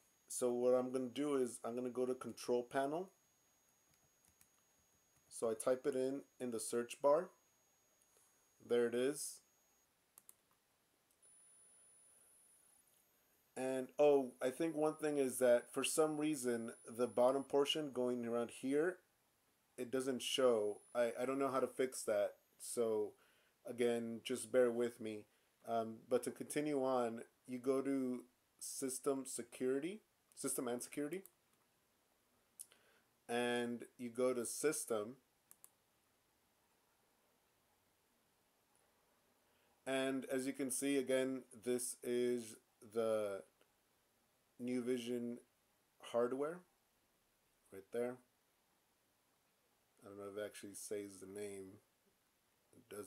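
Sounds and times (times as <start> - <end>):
thin high-pitched whine: 0.0 - 9.9, 11.1 - 19.0, 19.8 - 25.0
computer mouse clicks: 10.2 - 11.2, 35.5 - 35.8.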